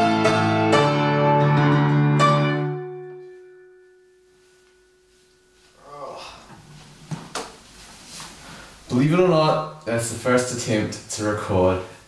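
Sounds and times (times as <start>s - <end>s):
cloth rustling: 4.0s - 5.9s, 6.5s - 8.8s.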